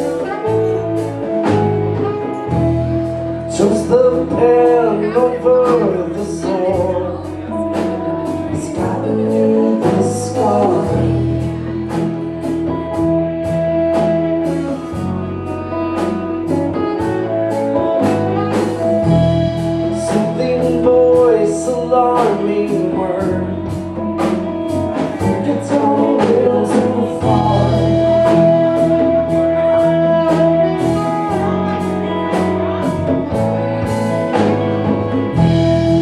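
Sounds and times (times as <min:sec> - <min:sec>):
electric guitars: 0:00.0 - 0:36.0
keyboard chords: 0:00.0 - 0:36.0.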